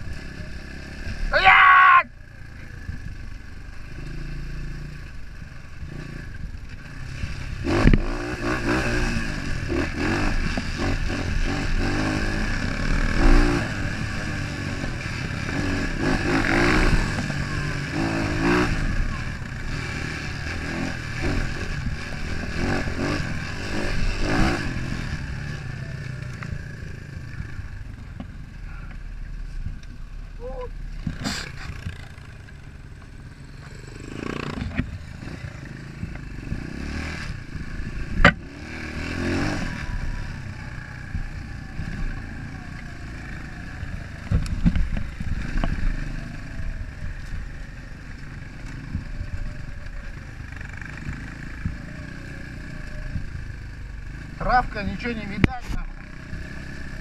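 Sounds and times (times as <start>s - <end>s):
dirt bike engine revving: 3.8s - 27.9s, 30.8s - 47.4s.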